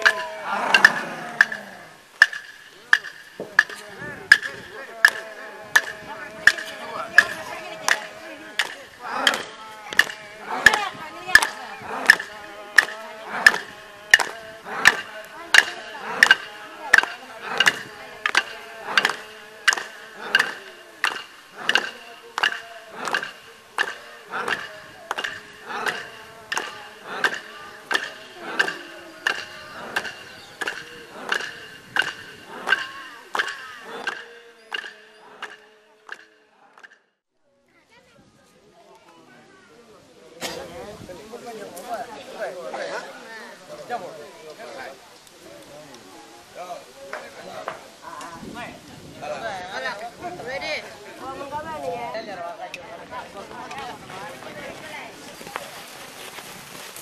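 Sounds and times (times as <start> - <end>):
wooden clapsticks beat: 0.0 - 1.6, 2.2 - 37.0
voices chanting: 0.0 - 37.2.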